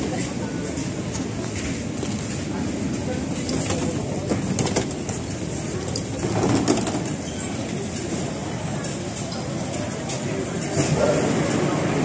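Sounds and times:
crowd walking and talking: 0.0s - 12.0s.

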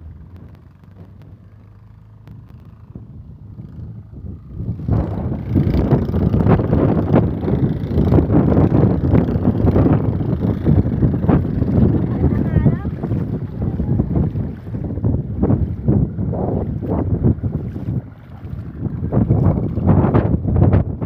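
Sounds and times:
feet wading through water: 0.0s - 20.5s
wind buffeting microphone: 0.0s - 21.0s.

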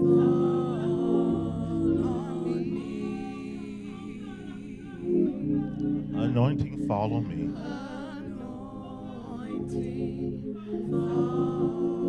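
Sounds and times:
gospel voices singing with vibrato: 0.0s - 12.0s
sustained low chords: 5.1s - 7.9s.

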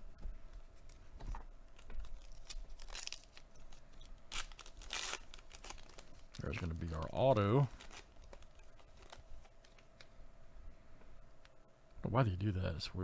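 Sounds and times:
foil pack crinkling and ripping: 1.8s - 10.0s.

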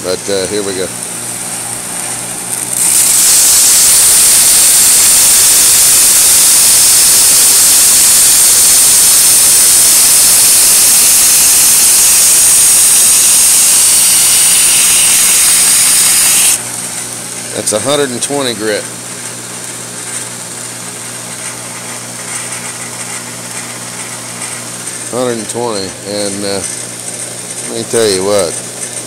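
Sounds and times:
belt grinder grinding steel: 0.0s - 16.7s
electric motor hum: 0.0s - 29.0s.

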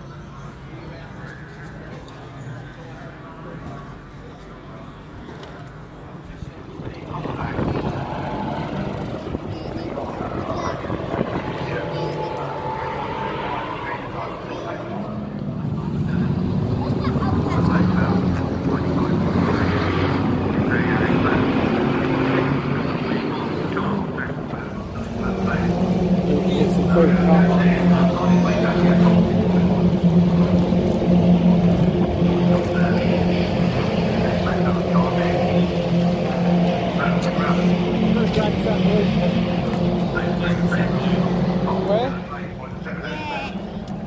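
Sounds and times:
people talking: 0.0s - 43.6s
engine drone: 0.0s - 44.0s.

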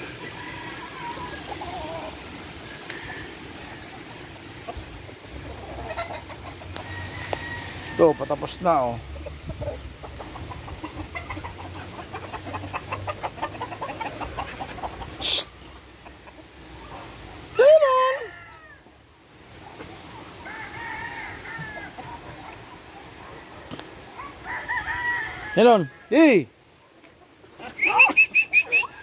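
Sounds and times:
rooster clucking: 0.0s - 17.4s, 27.4s - 29.0s
distant roosters crowing: 0.0s - 19.0s, 20.1s - 26.8s.

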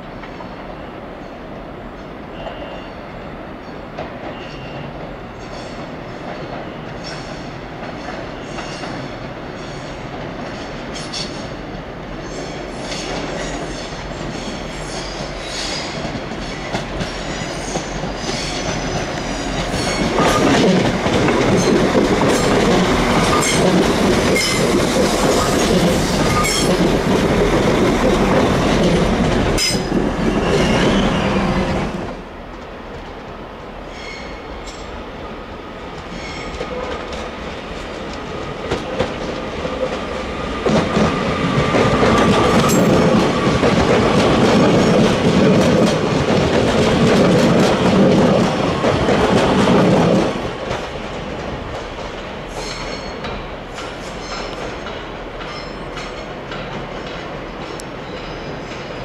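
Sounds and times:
train rumbling over points: 0.0s - 59.0s
electric train over points: 3.4s - 59.0s.

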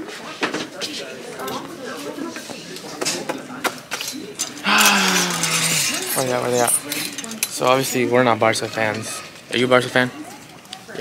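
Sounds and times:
clothes hangers clicking: 4.4s - 7.9s
hangers scraping along metal rack: 4.4s - 9.6s.

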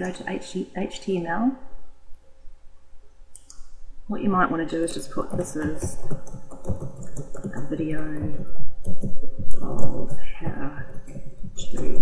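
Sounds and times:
faint background hum: 0.0s - 12.0s.

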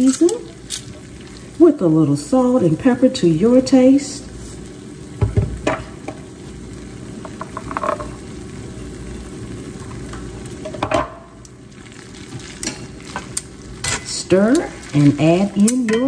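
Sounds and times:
metal tongs clattering against pan: 0.0s - 1.0s, 12.6s - 16.0s
pasta sizzling in skillet: 0.0s - 16.0s.

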